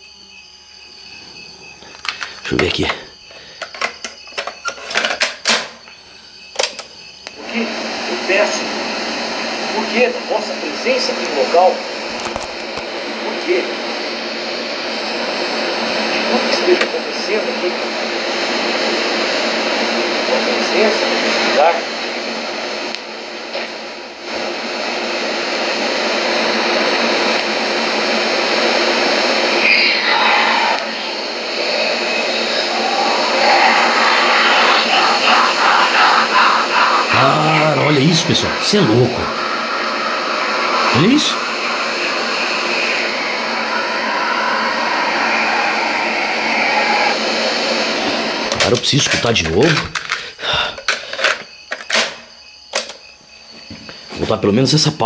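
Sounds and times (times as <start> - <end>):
tape hiss and hum: 5.7 - 54.9
faint voice on tape: 29.6 - 39.5.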